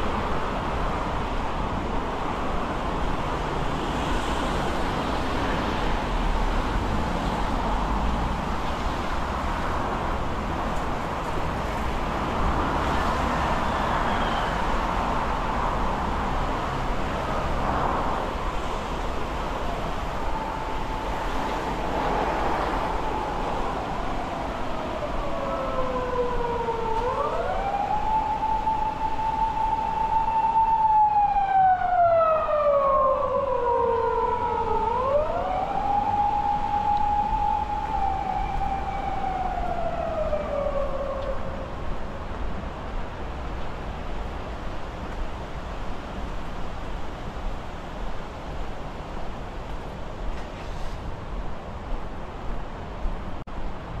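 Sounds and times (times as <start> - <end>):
street traffic noise: 0.0 - 54.0
siren wailing: 19.5 - 41.8.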